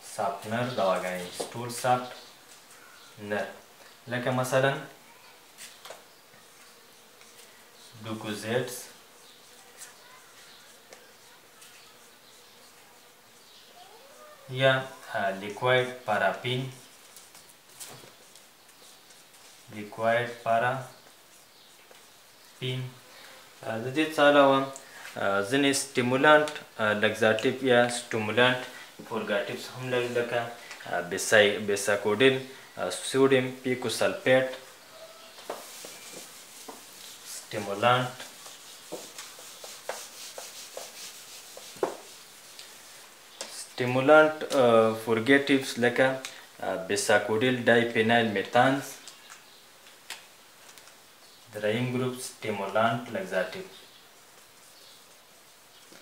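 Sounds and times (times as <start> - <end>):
marker squeaking on whiteboard: 9.0 - 15.1, 16.6 - 23.0, 34.4 - 42.5
whiteboard rubbing with squeaks: 34.9 - 42.5.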